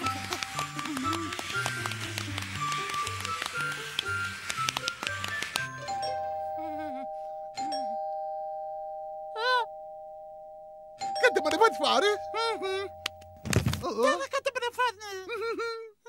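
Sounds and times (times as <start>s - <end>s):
background music: 0.0s - 7.9s
two-tone doorbell chime: 5.7s - 13.7s.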